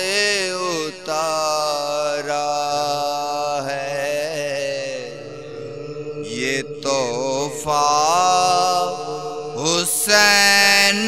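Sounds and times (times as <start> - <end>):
wordless chanted lament vocals: 0.0 - 11.0.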